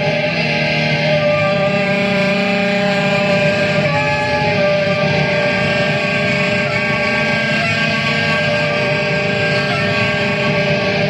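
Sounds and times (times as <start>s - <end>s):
saxophone held tones: 0.0s - 11.0s.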